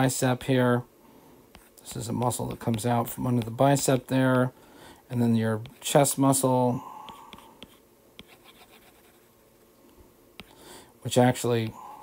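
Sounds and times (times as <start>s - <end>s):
stylus scratching on glass screen: 7.1s - 9.3s.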